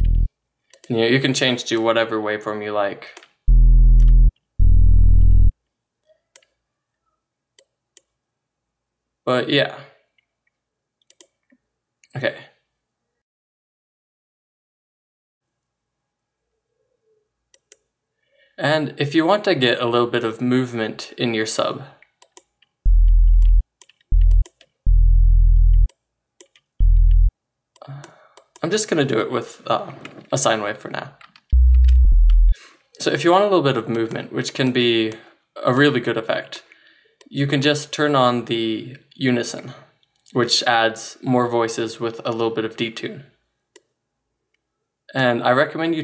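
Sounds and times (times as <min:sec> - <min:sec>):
synth sub bass notes: 0:00.0 - 0:00.3, 0:03.5 - 0:05.5, 0:22.9 - 0:25.9, 0:26.8 - 0:27.3, 0:31.6 - 0:32.5.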